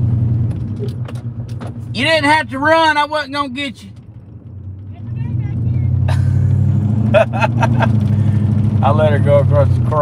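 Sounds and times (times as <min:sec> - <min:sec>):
truck engine drone: 0:00.0 - 0:10.0.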